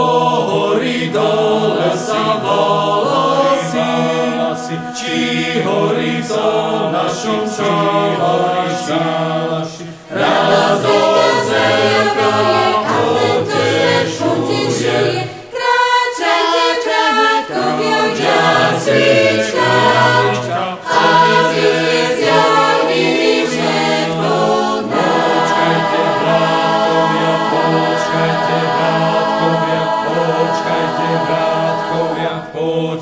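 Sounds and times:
choir singing in harmony: 0.0 - 33.0.

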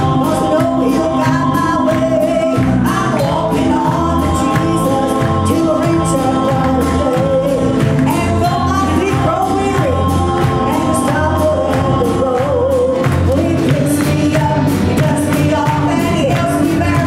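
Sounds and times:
choir singing gospel song: 0.0 - 17.0
instrumental accompaniment: 0.0 - 17.0.

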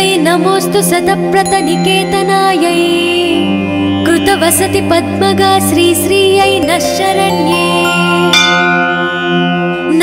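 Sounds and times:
ringing bell-like note: 6.7 - 10.0.

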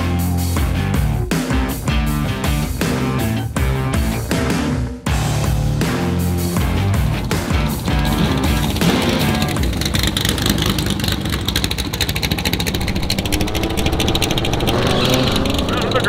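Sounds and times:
vee eight engine rattling beat: 5.1 - 16.0.

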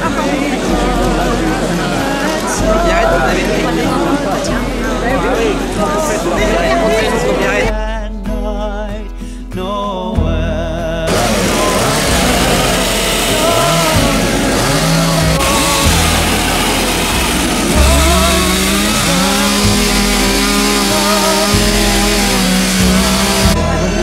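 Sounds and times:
chainsaws cutting wood: 0.0 - 7.7, 11.1 - 23.7.

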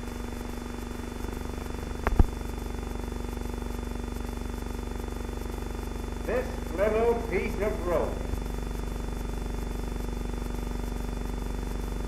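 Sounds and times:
film soundtrack hum and hiss: 0.0 - 12.0.

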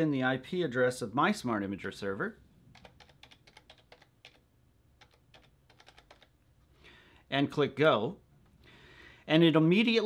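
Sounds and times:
keyboard keys clicking: 2.7 - 4.4, 5.0 - 6.3.

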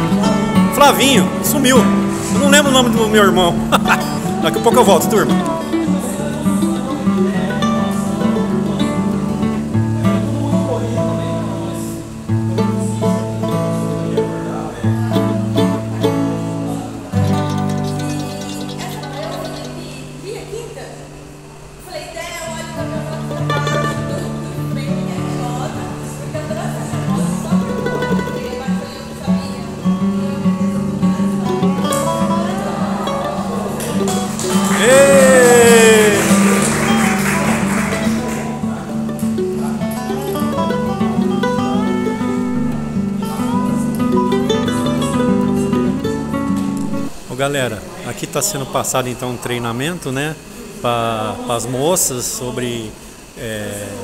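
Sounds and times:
background music: 0.0 - 13.0, 31.9 - 38.8
person's voice: 0.7 - 5.6, 34.8 - 36.6.

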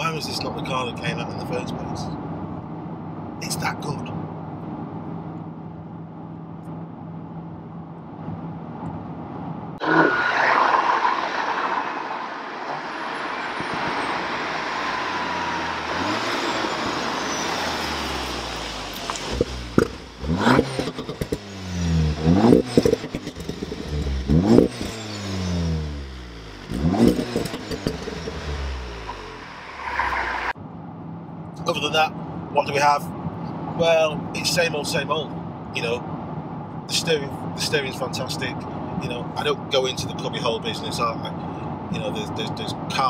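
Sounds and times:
car passing on wet road: 9.8 - 18.9, 28.8 - 30.6
car engine revving: 9.8 - 30.6.

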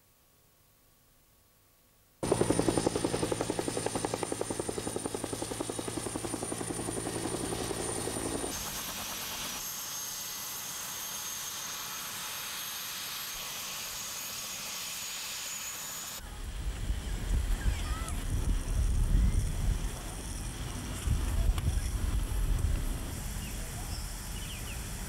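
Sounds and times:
helicopter rotor blades beating: 2.2 - 25.0.

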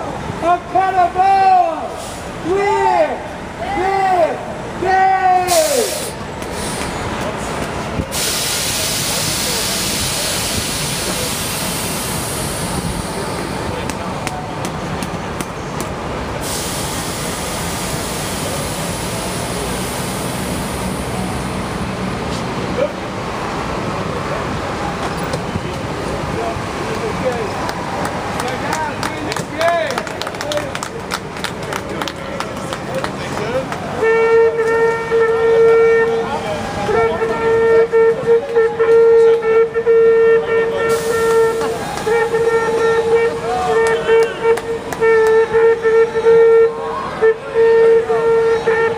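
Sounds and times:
people chattering: 0.0 - 48.9
bus air brakes hissing: 1.8 - 2.5, 5.4 - 14.1, 16.3 - 22.6, 40.7 - 46.2
horn held note: 37.0 - 48.9.

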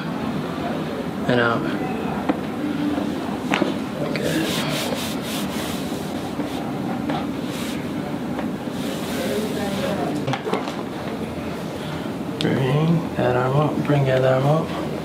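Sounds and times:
hands rubbing fabric: 4.1 - 8.0, 8.7 - 10.0.

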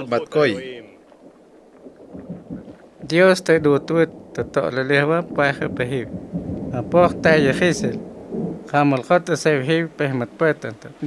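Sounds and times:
faint low rumbling: 0.0 - 11.0
soft low bumps: 1.1 - 11.0.

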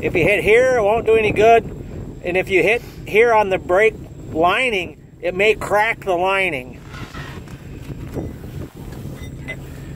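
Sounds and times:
vehicle engine idling: 0.0 - 9.9
wind on microphone: 0.0 - 9.9.

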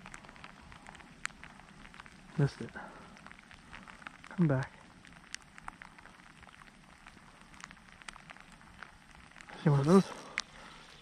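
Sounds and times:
light rain hiss: 0.0 - 11.0
raindrops ticking: 0.0 - 11.0.

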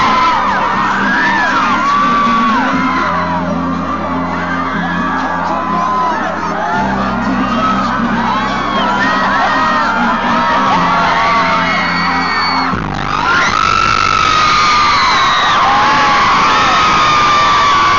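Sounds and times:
amplified pop song: 0.0 - 17.9
crowd screaming and whooping: 0.0 - 17.9.

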